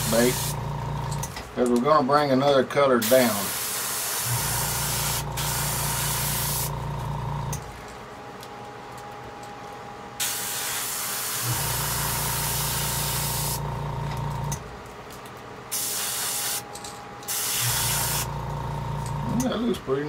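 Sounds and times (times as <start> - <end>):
airbrush spraying hiss: 0.0 - 0.6, 3.0 - 6.7, 10.2 - 13.6, 15.7 - 16.6, 17.3 - 18.3.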